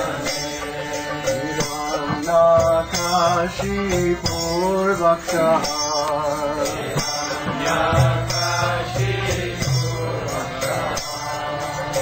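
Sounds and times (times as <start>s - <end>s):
instrumental accompaniment: 0.0s - 12.0s
man singing a chant: 0.0s - 12.0s.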